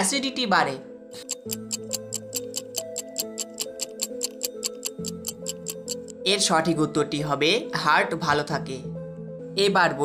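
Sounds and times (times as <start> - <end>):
soft background music: 0.0 - 10.0
clock ticking: 1.2 - 6.2.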